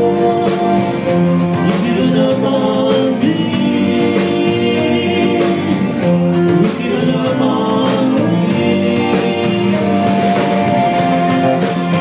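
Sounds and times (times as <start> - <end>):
bass guitar: 0.0 - 12.0
drum beat: 0.0 - 12.0
guitars: 0.0 - 12.0
man singing long notes: 0.0 - 12.0.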